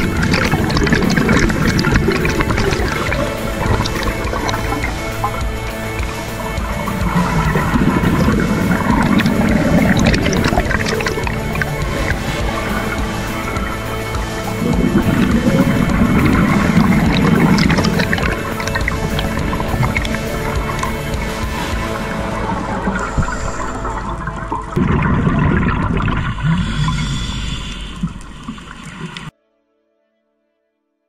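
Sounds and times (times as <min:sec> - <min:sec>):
background music: 0:00.0 - 0:28.2
underwater regulator bubbling: 0:00.0 - 0:29.3.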